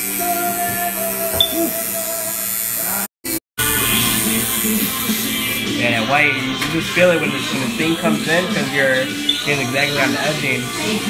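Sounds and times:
tattoo machine buzzing: 0:00.0 - 0:10.4
background music: 0:03.6 - 0:11.0.

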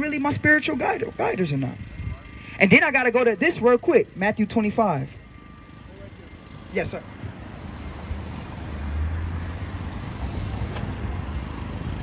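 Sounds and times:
vehicle passing: 0:00.0 - 0:12.0.

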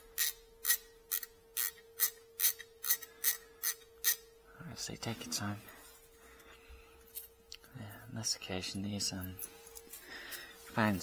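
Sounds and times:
ratchet wrench clicking: 0:00.2 - 0:04.2.

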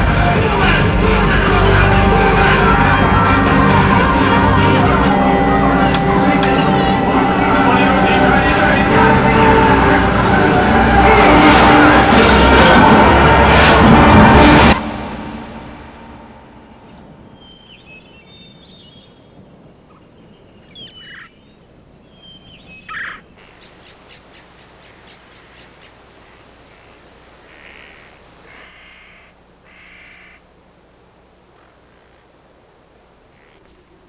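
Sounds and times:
bird calls: 0:16.9 - 0:30.5, 0:31.5 - 0:34.0.

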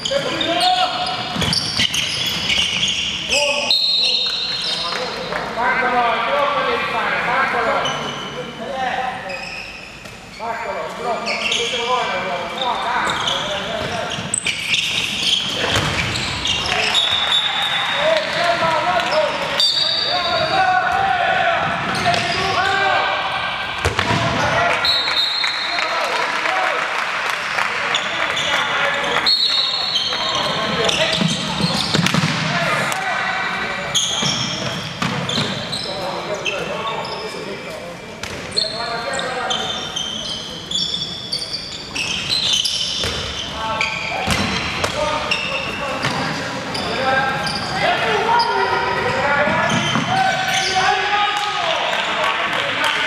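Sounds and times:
shoe squeaks: 0:00.0 - 0:05.3, 0:07.6 - 0:20.7, 0:21.9 - 0:23.0, 0:24.7 - 0:26.0, 0:27.9 - 0:32.2, 0:33.5 - 0:51.0
ball bouncing on wooden court: 0:01.3 - 0:02.0, 0:13.8 - 0:16.3, 0:23.8 - 0:24.4, 0:31.1 - 0:32.5, 0:43.0 - 0:43.3, 0:44.2 - 0:45.0, 0:46.0 - 0:46.3, 0:49.6 - 0:50.2
players shouting: 0:15.2 - 0:26.9.

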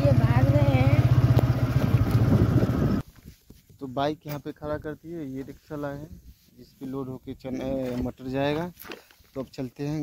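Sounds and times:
motorcycle engine running: 0:00.0 - 0:03.0.

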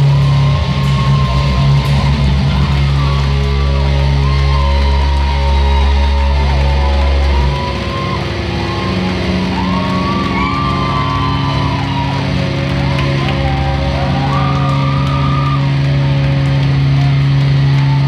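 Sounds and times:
rock band playing live: 0:00.0 - 0:17.9
long bending guitar notes: 0:00.0 - 0:18.0.

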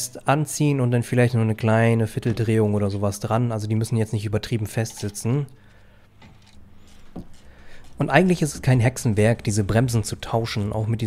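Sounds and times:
hand tool handling ticks: 0:04.8 - 0:08.8.

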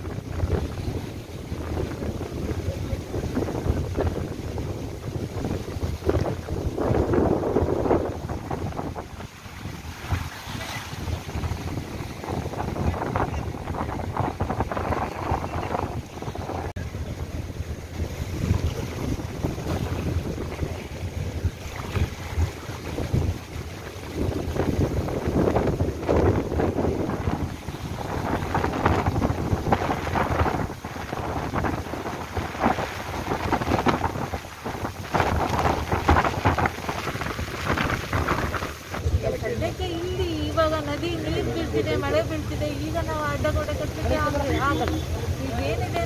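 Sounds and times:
rough sea surf washing ashore: 0:00.0 - 0:46.0
wind buffeting microphone: 0:00.0 - 0:46.0.

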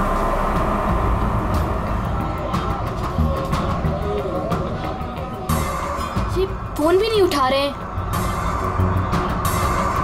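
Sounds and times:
dense low rumble: 0:00.0 - 0:07.0
background music held tone: 0:00.0 - 0:10.0.

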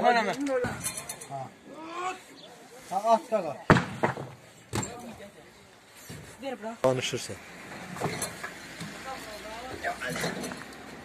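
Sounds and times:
men talking indistinctly: 0:00.0 - 0:03.7, 0:06.8 - 0:07.4
sharp knocks: 0:03.7 - 0:04.9.

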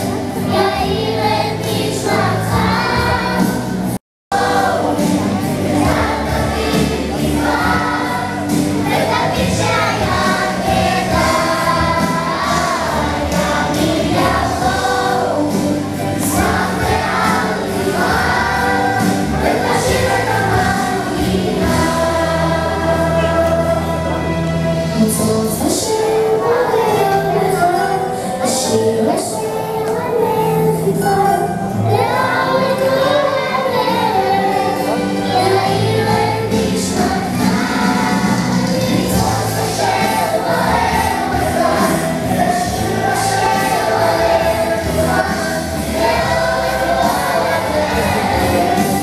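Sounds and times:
instrumental accompaniment: 0:00.0 - 0:28.2, 0:28.8 - 0:49.0
recorded music: 0:00.0 - 0:49.0
young children singing: 0:00.0 - 0:49.0.

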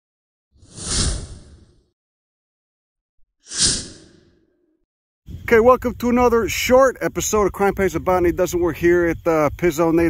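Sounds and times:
whoosh sound effects: 0:00.6 - 0:01.9, 0:03.5 - 0:04.4.

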